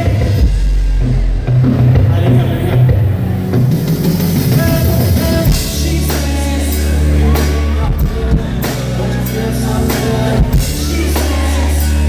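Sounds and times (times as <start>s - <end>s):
bass-heavy live band music: 0.0s - 12.0s.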